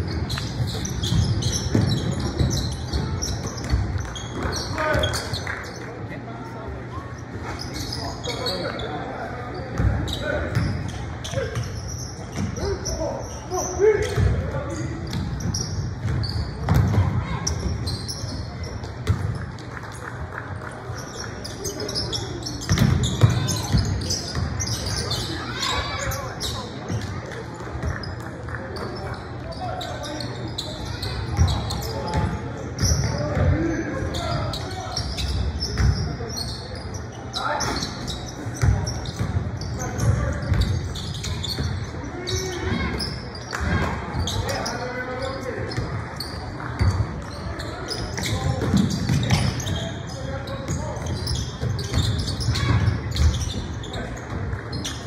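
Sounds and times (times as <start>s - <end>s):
basketball bouncing on hardwood: 16.0s - 17.1s.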